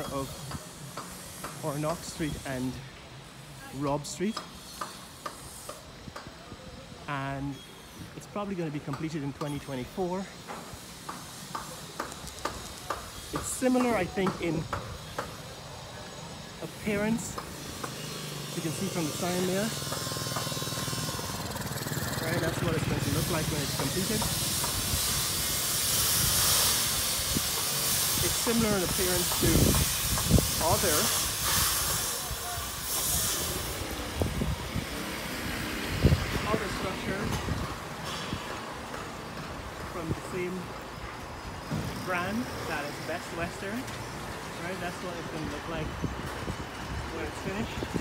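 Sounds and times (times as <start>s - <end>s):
faint street hiss: 0.0s - 48.0s.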